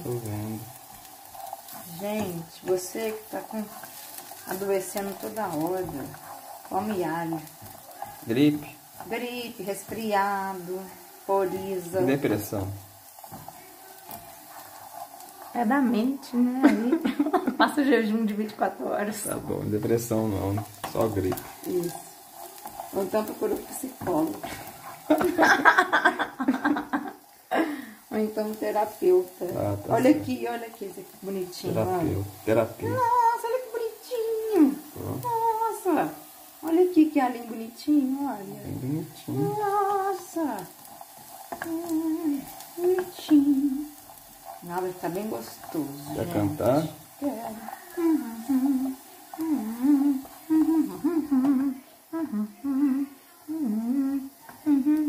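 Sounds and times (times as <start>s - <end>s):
garlic sizzling in oil: 0.0s - 55.0s
spatula stirring in pan: 0.0s - 55.0s
woman humming: 38.5s - 40.2s, 41.6s - 43.9s, 47.2s - 55.0s.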